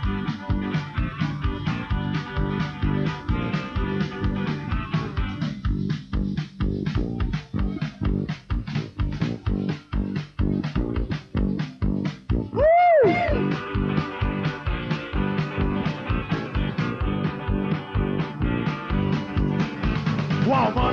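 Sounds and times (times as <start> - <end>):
bass guitar: 0.0 - 20.9
driving drum beat: 0.0 - 20.9
electric guitar: 0.0 - 20.9.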